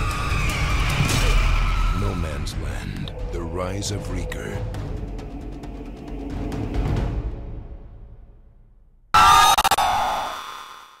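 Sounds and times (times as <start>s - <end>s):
harsh high-pitched screech: 9.2s - 11.0s.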